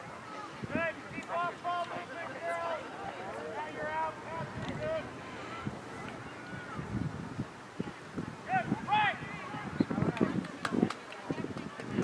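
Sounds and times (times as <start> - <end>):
girls calling and shouting: 0.0 - 12.0.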